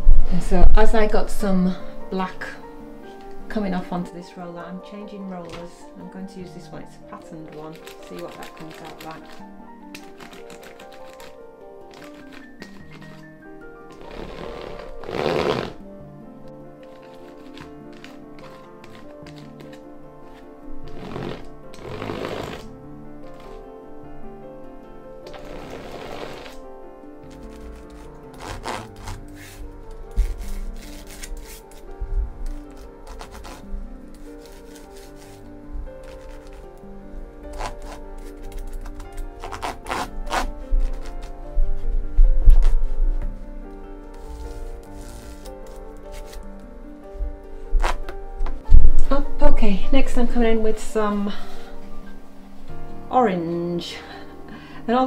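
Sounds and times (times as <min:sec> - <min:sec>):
background music: 0:00.0 - 0:55.0
paint roller rushing on canvas: 0:13.9 - 0:15.8, 0:16.9 - 0:22.7, 0:25.3 - 0:26.6, 0:27.3 - 0:31.8, 0:32.7 - 0:36.6.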